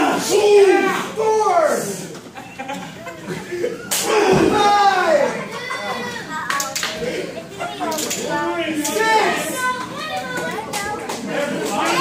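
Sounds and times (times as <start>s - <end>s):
people talking: 0.0s - 12.0s
children's voices: 2.6s - 12.0s.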